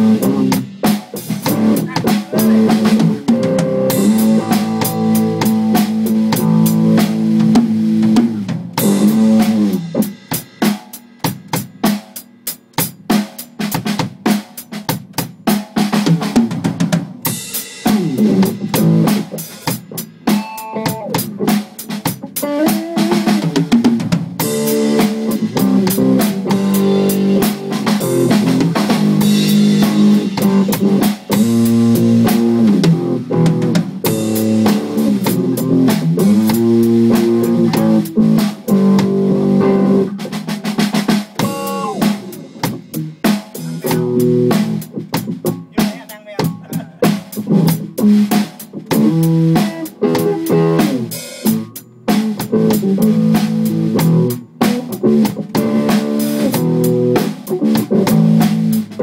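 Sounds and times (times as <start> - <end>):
electric guitar melody: 0.0 - 10.0, 20.2 - 21.6, 22.2 - 23.4, 24.4 - 40.7, 41.4 - 45.9, 46.6 - 59.0
steady drum beat: 0.0 - 59.0.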